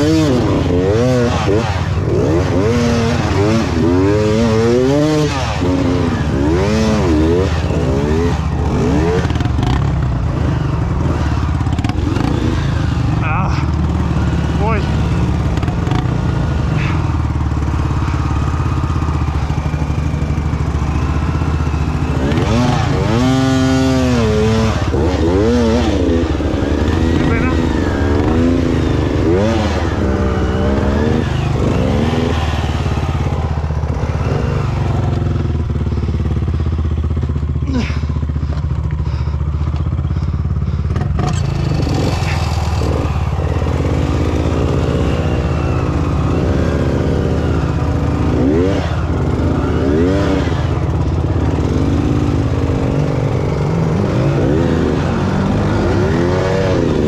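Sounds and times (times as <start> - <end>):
dirt bike engines idling: 0.0 - 57.0.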